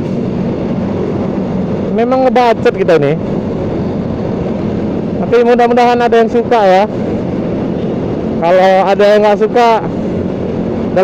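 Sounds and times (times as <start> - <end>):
motor scooter engine hum: 0.0 - 5.3, 5.9 - 11.0
road and wind noise: 0.0 - 11.0.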